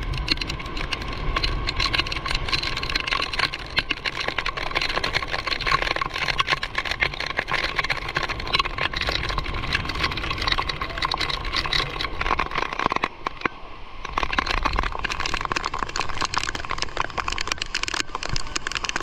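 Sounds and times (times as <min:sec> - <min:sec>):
wind on microphone: 0:00.0 - 0:13.4.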